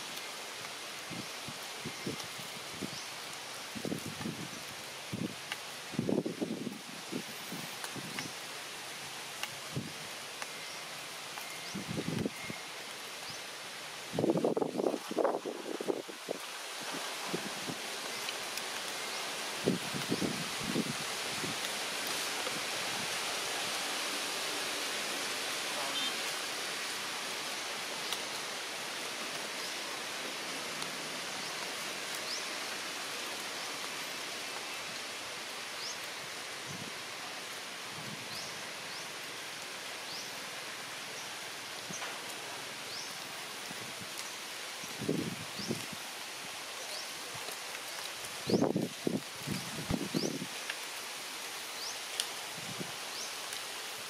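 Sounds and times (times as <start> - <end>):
steady outdoor background hiss: 0.0 - 54.0.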